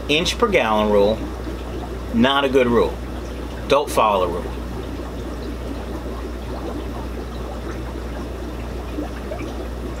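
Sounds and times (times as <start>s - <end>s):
constant low hum: 0.0s - 10.0s
water trickling and bubbling: 0.0s - 10.0s.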